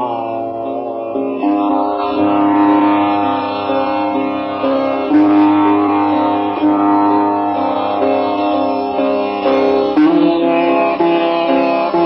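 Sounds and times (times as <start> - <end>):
sitar slow melody: 0.0 - 12.0.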